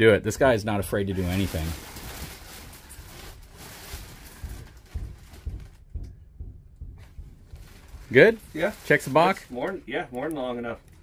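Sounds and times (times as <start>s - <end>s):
bedding rustling: 0.3s - 6.1s, 7.0s - 9.8s
soft thumps on mattress: 3.1s - 9.4s.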